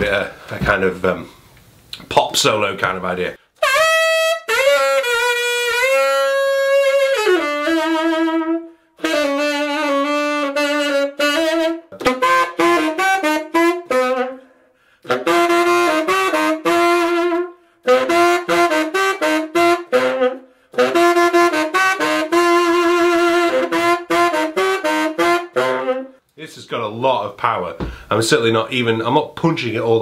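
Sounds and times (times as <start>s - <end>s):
tenor saxophone solo: 3.6s - 26.2s.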